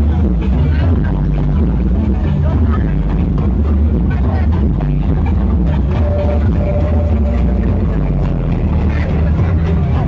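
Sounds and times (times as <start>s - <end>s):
people's voices: 0.0s - 10.0s
electronic dance music: 5.4s - 10.0s.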